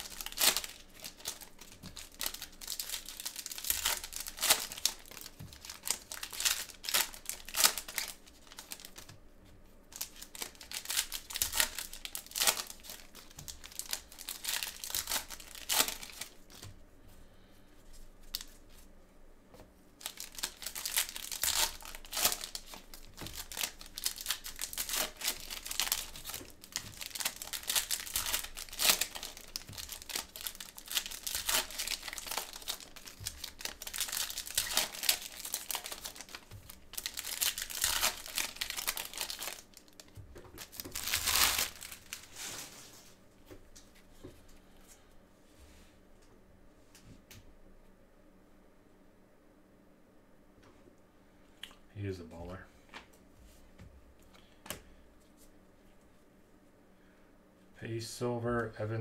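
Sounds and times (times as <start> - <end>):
foil wrappers tearing and crinkling: 0.0 - 9.2, 9.9 - 16.7, 20.0 - 42.9.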